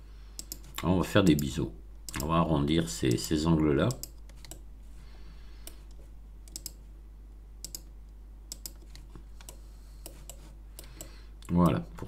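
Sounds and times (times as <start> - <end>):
faint low hum: 0.0 - 12.0
mouse and keyboard clicks: 5.6 - 6.8, 8.5 - 11.2.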